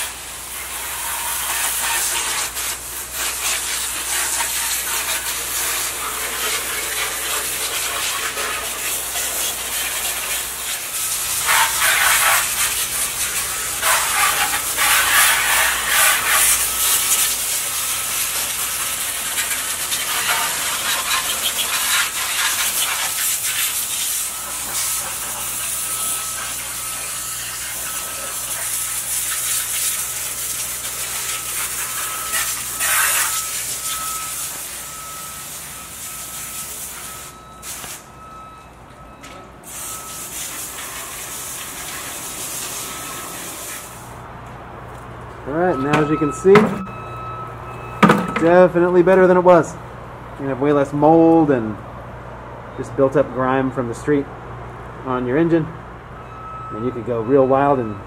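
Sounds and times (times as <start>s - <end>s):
hose spray hissing: 0.0s - 38.1s, 39.6s - 44.2s
faint repeating beep: 45.5s - 48.8s, 56.2s - 58.0s.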